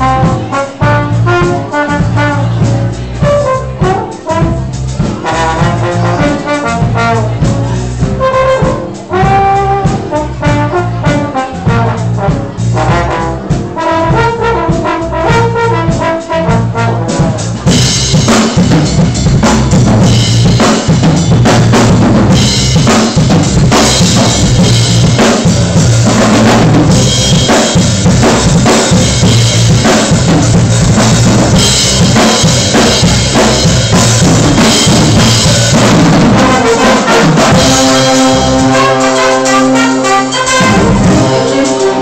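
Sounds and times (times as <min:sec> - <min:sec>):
bass: 0:00.0 - 0:42.0
drums and cymbals: 0:00.0 - 0:42.0
trombone solo: 0:00.0 - 0:42.0.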